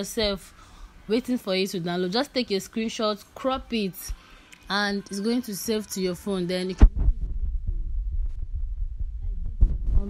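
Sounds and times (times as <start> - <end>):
low background rumble and hum: 0.0 - 10.0.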